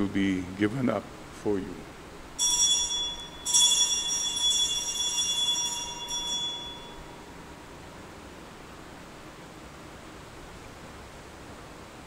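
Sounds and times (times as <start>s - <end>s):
altar bell ringing: 2.4s - 7.5s.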